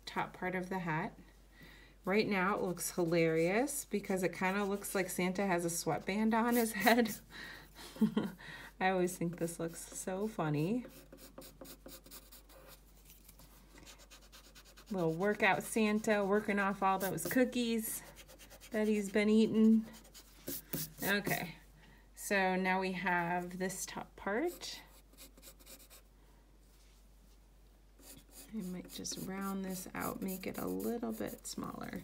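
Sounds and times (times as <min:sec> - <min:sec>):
pencil sketching on paper: 0:04.2 - 0:07.2, 0:10.8 - 0:21.5, 0:24.5 - 0:26.0, 0:28.0 - 0:32.0.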